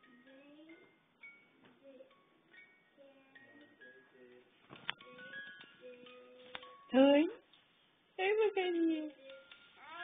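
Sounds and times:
crib mobile tinkling melody: 0.0 - 7.4, 8.2 - 10.0.

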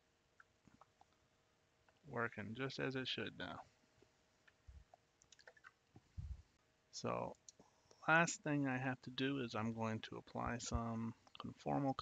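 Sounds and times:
faint steady hum: 0.0 - 12.0
soft low thump: 6.1 - 6.4.

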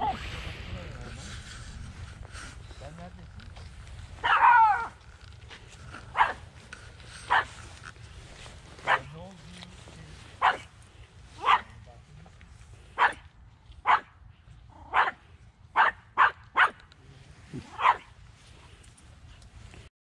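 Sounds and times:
puppy barking: 4.2 - 5.0, 6.1 - 6.4, 7.2 - 7.5, 8.8 - 9.1, 10.4 - 10.7, 11.4 - 11.7, 13.0 - 13.2, 13.8 - 14.1, 14.8 - 15.2, 15.8 - 16.8, 17.6 - 18.1.

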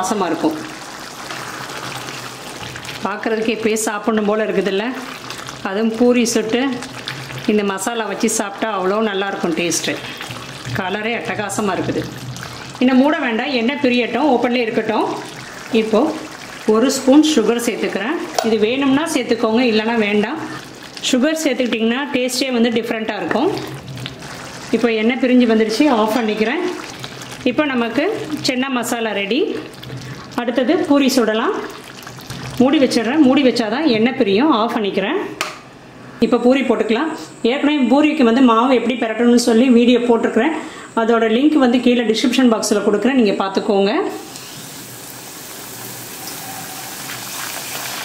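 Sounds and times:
gravy simmering in a pan: 0.6 - 3.1, 4.9 - 8.6, 9.3 - 11.3, 12.0 - 18.4, 19.1 - 22.3, 23.5 - 26.0, 26.6 - 28.5, 31.5 - 32.9, 44.3 - 48.0
woman speaking: 7.5 - 10.1, 10.8 - 12.1, 12.8 - 20.5, 21.1 - 23.7, 24.7 - 26.8, 32.6 - 35.4, 36.2 - 44.2.

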